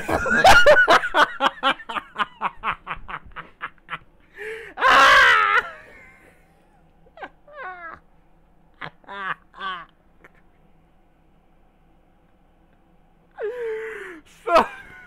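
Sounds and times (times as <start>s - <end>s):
man laughing hard: 0.0s - 8.1s, 8.7s - 10.4s, 13.4s - 15.0s.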